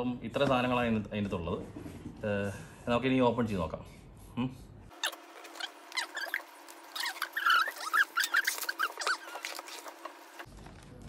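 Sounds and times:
cardboard lid squeaking and crackling: 0:05.0 - 0:10.5.

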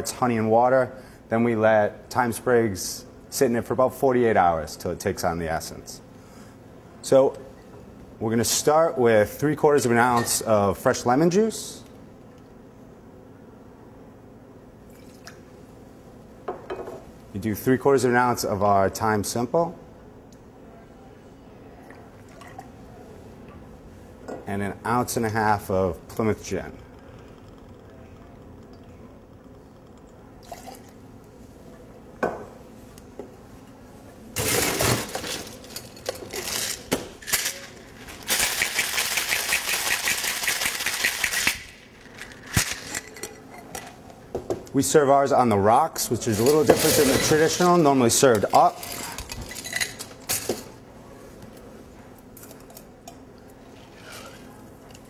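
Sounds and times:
low room hum: 0:00.0 - 0:55.0
ice clattering into shaker: 0:34.4 - 0:43.2
ice rattling in shaken shaker: 0:34.7 - 0:43.0.

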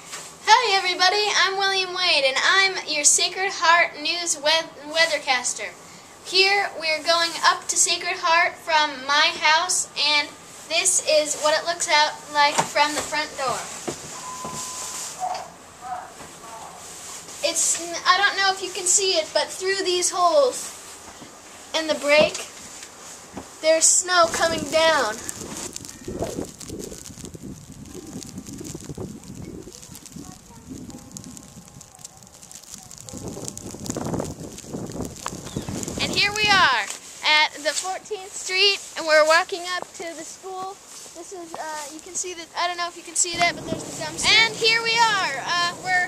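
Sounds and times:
hiss: 0:20.5 - 0:46.0
low rumble on microphone: 0:24.2 - 0:36.7, 0:43.2 - 0:46.0
footsteps crunching through snow: 0:24.2 - 0:42.3.

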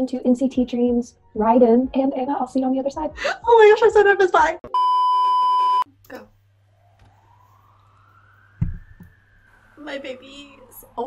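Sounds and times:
loud electronic beep: 0:04.7 - 0:05.8
faint rising and falling tone: 0:06.6 - 0:11.0
short low thump: 0:08.6 - 0:09.2.

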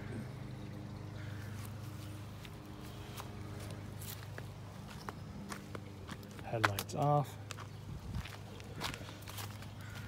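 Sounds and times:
footsteps scuffing: 0:01.6 - 0:10.0.

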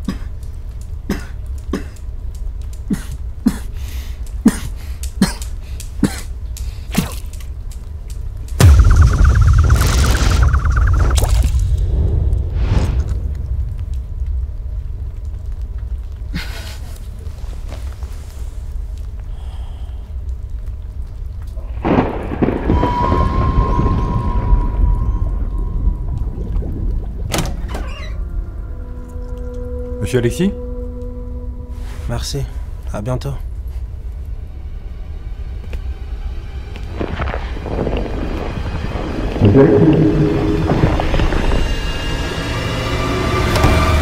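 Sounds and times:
sharp crack: 0:08.5 - 0:15.8
warbling high tone: 0:08.6 - 0:11.9
deep bass: 0:08.6 - 0:15.8, 0:37.7 - 0:44.0
low steady rumble: 0:08.6 - 0:16.5.

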